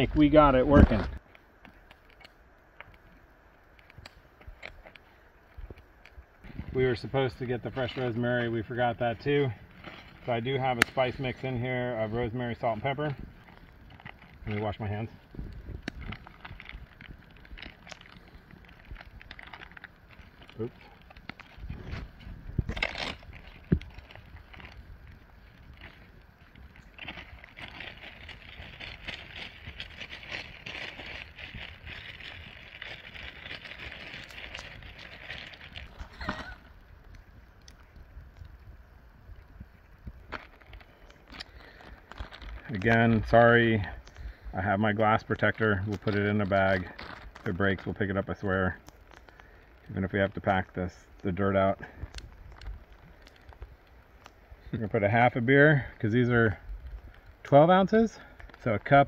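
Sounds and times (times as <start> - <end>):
plastic bag rustling: 5.9 - 38.2, 40.0 - 59.0.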